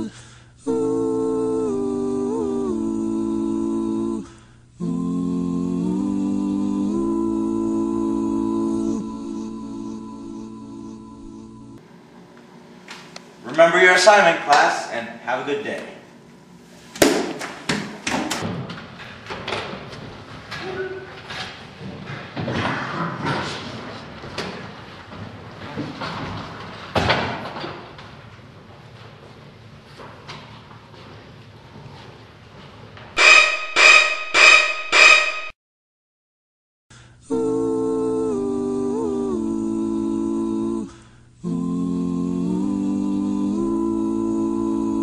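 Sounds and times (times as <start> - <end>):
male voices humming a chord: 0.0 - 11.8, 37.2 - 45.0.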